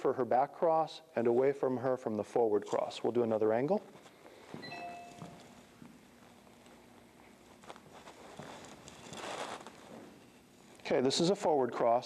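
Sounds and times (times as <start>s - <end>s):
footsteps on wooden floor: 4.4s - 9.1s
brief faint tone: 4.6s - 5.4s.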